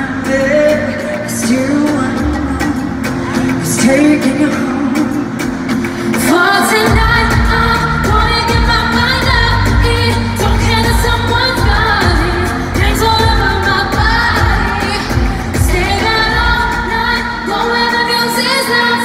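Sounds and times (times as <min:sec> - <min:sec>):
women singing: 0:00.0 - 0:19.0.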